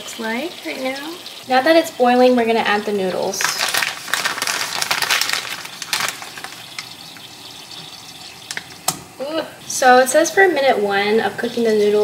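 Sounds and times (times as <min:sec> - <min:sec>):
sauce bubbling: 0:00.0 - 0:10.4
plastic packet crinkling: 0:03.3 - 0:07.2.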